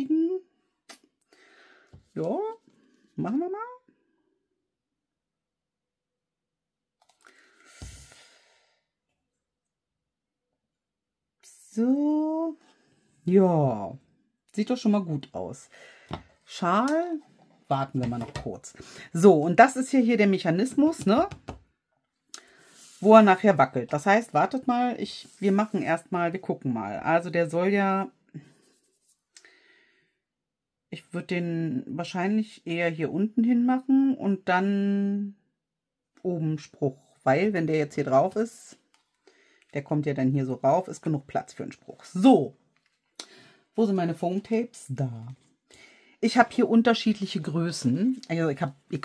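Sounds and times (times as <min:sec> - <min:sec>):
tap on cutting mat: 0:16.1 - 0:16.3.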